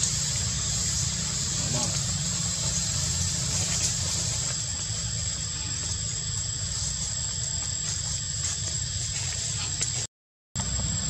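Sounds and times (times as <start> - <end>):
high-pitched whine: 0.0 - 9.4.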